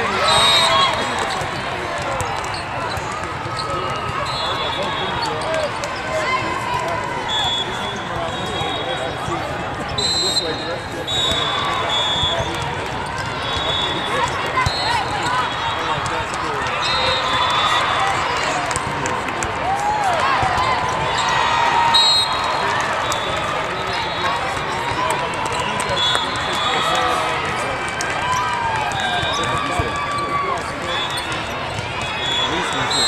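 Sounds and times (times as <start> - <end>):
crowd talking and calling: 0.0 - 33.0
referee whistle blasts: 0.2 - 1.0, 7.3 - 9.0, 10.0 - 12.6, 13.4 - 15.0, 16.8 - 18.0, 21.2 - 24.4, 25.9 - 27.1, 30.9 - 33.0
volleyballs struck and bouncing: 18.4 - 21.2.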